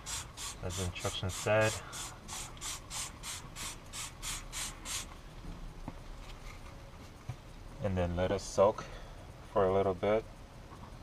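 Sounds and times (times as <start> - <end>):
spray bottle hissing sprays: 0.0 - 5.2.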